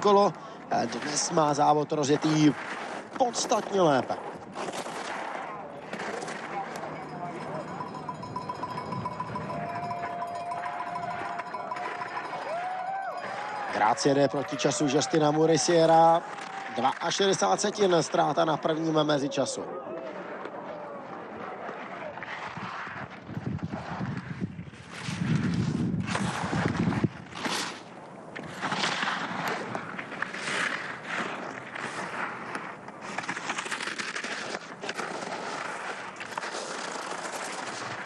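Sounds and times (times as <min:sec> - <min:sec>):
skis carving on icy snow: 0:00.7 - 0:09.3, 0:20.0 - 0:38.0.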